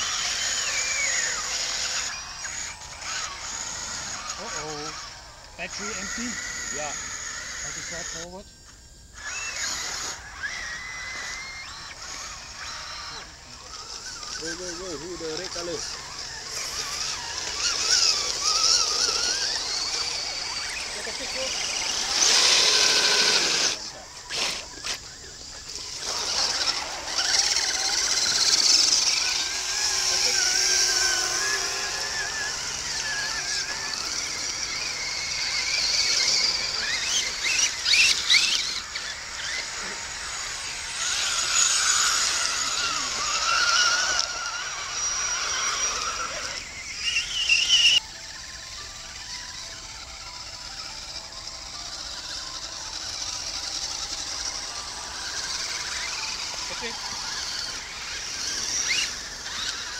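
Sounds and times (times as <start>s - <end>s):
electric motors whining: 0.0s - 59.9s.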